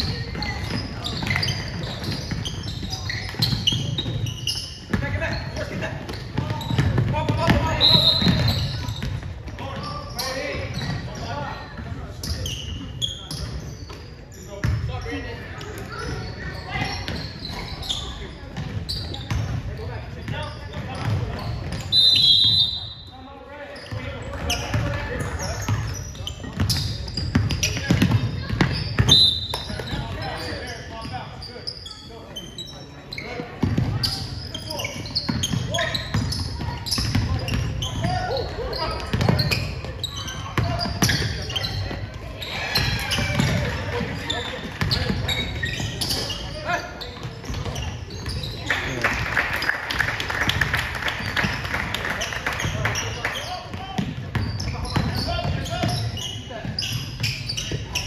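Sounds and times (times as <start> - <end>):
referee's whistle: 7.7 - 8.8, 21.8 - 23.2, 29.0 - 29.7.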